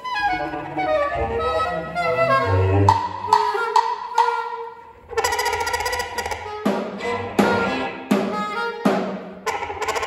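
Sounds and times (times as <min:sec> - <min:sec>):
soprano saxophone: 0:00.0 - 0:05.0, 0:08.3 - 0:08.9
cello: 0:00.0 - 0:10.0
drums: 0:05.2 - 0:10.0.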